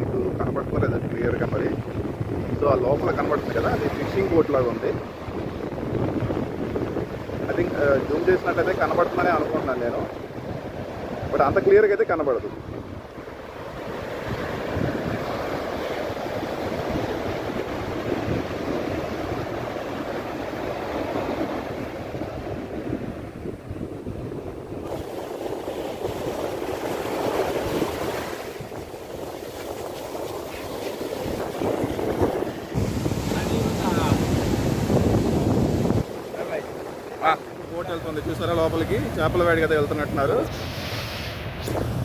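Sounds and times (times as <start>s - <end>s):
sea surf breaking on sand: 0.0s - 42.0s
wind on microphone: 0.0s - 42.0s.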